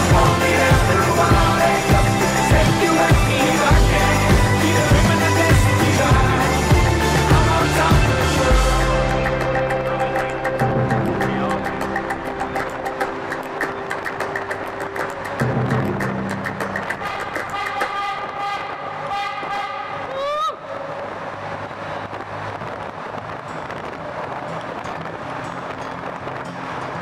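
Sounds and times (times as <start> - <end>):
music with steady beat: 0.0 - 18.4
steady rushing noise: 0.0 - 27.0.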